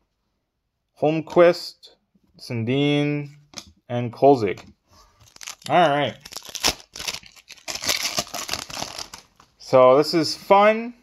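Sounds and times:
card pack wrapper tearing: 5.2s - 9.4s.

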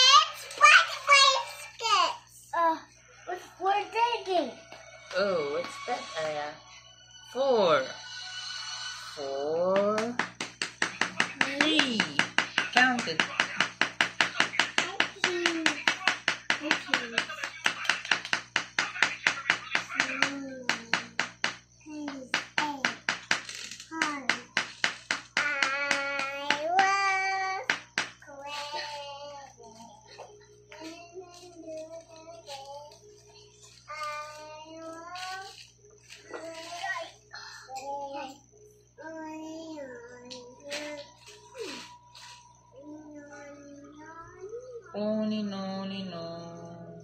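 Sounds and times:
child singing: 19.6s - 21.2s, 25.4s - 35.6s, 36.4s - 41.8s, 42.7s - 45.2s.

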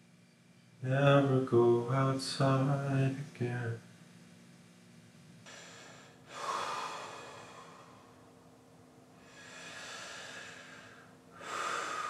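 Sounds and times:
man breathing heavily: 5.5s - 8.2s, 9.2s - 12.0s.

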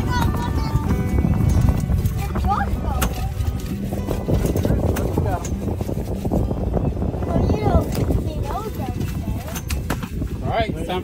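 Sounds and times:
boat motor rumbling: 0.0s - 11.0s
music: 0.0s - 11.0s
wind: 0.0s - 11.0s.

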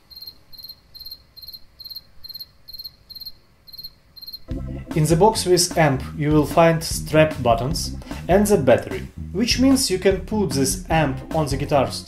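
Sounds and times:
cricket chirping: 0.0s - 4.5s
loud low noise: 4.5s - 11.8s.

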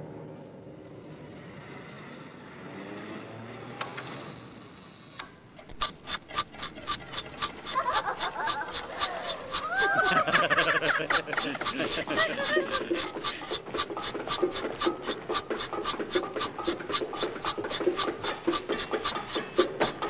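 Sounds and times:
clockwork timer ticking: 5.6s - 20.0s
timer clicks: 5.6s - 20.0s
people laughing: 5.8s - 20.0s.

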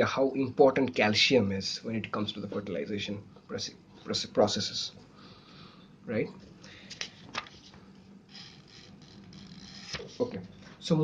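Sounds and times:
paper rustling and scraping: 7.1s - 10.4s.

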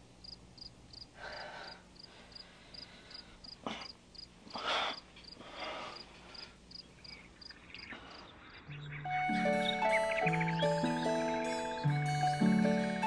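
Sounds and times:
crickets chirping: 0.2s - 11.8s.

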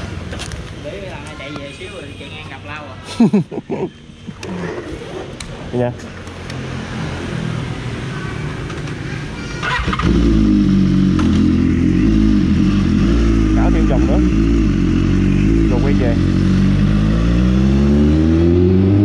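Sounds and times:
motorcycle engine starting and idling: 9.6s - 14.7s.

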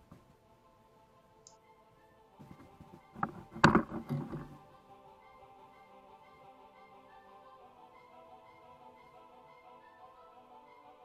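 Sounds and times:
background music: 0.0s - 11.0s
fishing reel knocks and rattles: 3.2s - 4.6s.

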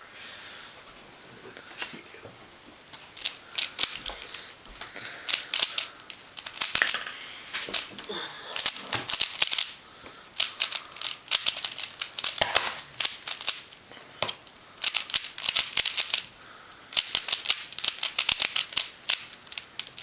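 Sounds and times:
plastic puzzle cube clicking: 3.2s - 4.4s, 5.2s - 9.8s, 10.4s - 16.3s, 16.9s - 20.0s.

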